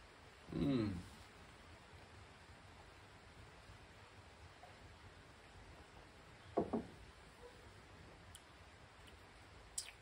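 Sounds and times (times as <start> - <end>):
faint steady background noise: 0.0 - 10.0
soft knocks: 6.6 - 7.0.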